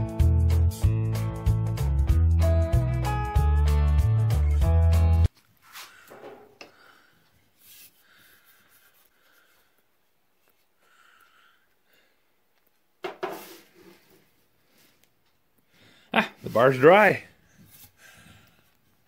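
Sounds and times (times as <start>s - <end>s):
guitar music: 0.0s - 5.3s.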